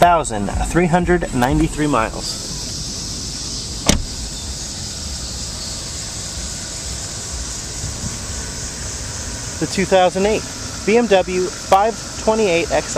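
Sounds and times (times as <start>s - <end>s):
car engine idling: 0.0s - 12.9s
sharp knock: 3.8s - 4.2s.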